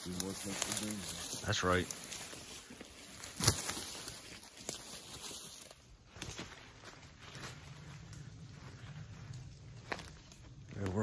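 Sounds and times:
footsteps in dry leaves: 0.0 - 11.0
quiet crackles: 0.0 - 11.0
sharp crunch: 3.1 - 5.0.

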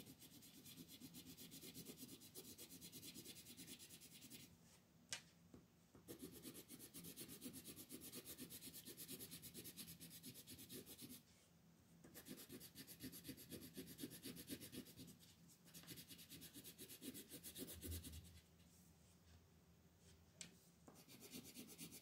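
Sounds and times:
pencil shading on paper: 6.1 - 11.2, 12.0 - 15.1.

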